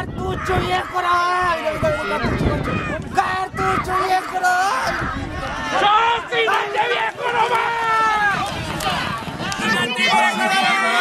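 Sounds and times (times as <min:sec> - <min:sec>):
spectators yelling: 0:00.0 - 0:11.0.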